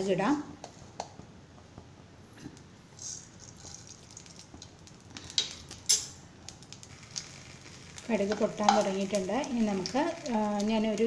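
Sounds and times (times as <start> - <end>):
seeds hissing in hot oil: 2.9 - 11.0
seeds popping in oil: 3.0 - 11.0.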